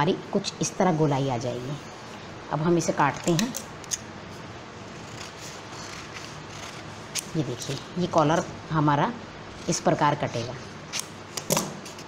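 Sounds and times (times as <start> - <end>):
scissors cutting paper: 4.9 - 7.9.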